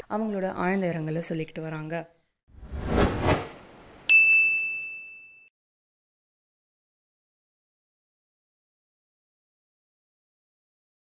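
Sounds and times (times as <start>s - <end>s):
short rushing swell: 2.6s - 4.1s
bright ding: 4.1s - 5.5s.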